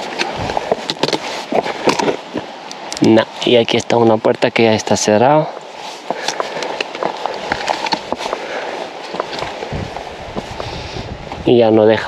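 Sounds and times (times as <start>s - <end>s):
footsteps on rough stone path: 0.0s - 4.1s, 4.7s - 11.5s.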